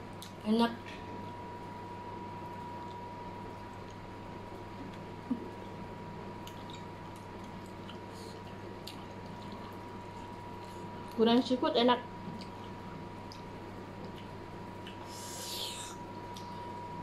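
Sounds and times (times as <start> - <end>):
electrical hum with high tone: 0.0 - 17.0
person chewing noodles: 6.4 - 11.2, 12.3 - 16.8.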